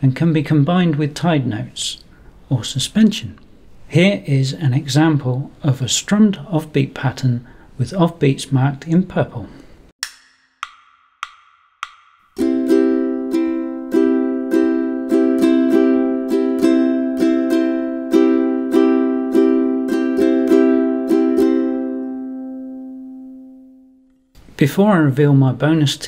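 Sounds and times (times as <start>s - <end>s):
ukulele strumming chords: 12.4s - 23.8s.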